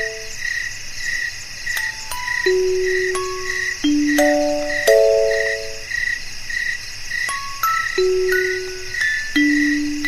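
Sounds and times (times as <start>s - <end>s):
crickets chirping: 0.0s - 10.0s
music box chord: 1.8s - 5.9s, 7.3s - 10.0s.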